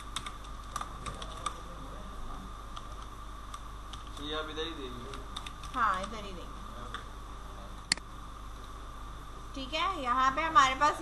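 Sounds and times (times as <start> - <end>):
computer keyboard typing: 0.0 - 1.6, 2.8 - 4.4, 5.0 - 6.2
steady hum: 0.0 - 11.0.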